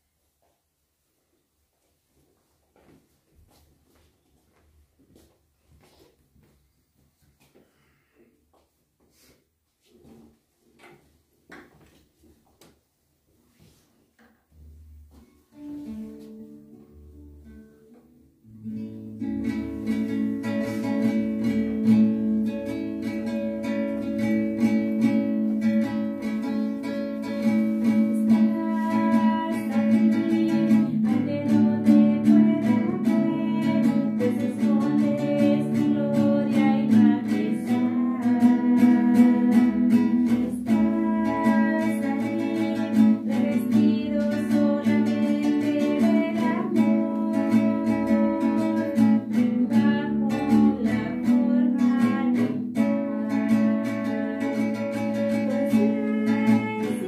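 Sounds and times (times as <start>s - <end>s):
strummed acoustic guitar: 14.5s - 57.0s
person singing: 18.6s - 57.0s.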